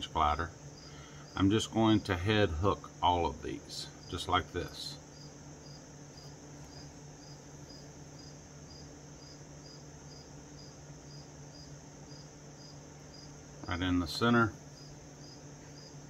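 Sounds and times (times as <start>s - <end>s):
cricket chirping: 0.0s - 16.0s
fan humming: 0.0s - 16.0s.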